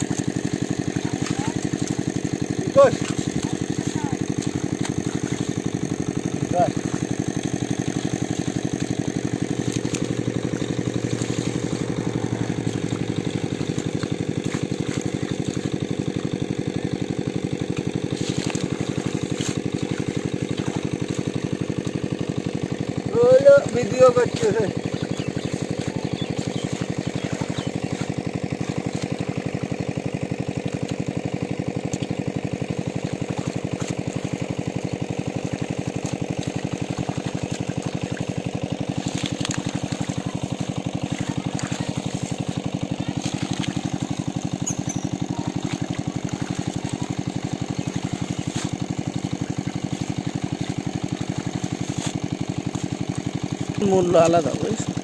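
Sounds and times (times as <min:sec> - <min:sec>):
small engine running steadily: 0:00.0 - 0:55.0.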